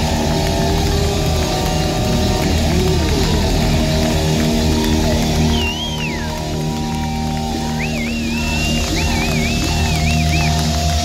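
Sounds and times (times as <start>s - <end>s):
hard rock band playing live: 0.0s - 11.0s
high wavering whistle: 4.8s - 6.6s, 7.5s - 10.7s.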